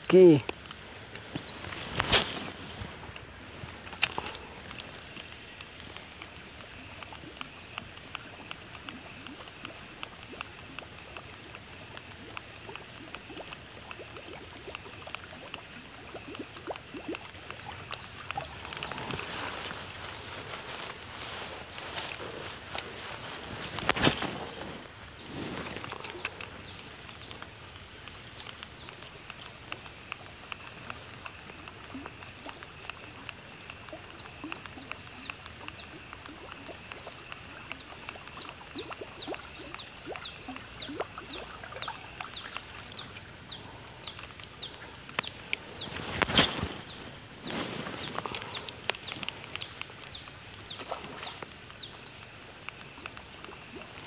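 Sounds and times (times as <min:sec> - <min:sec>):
insects droning: 0:00.0 - 0:54.0.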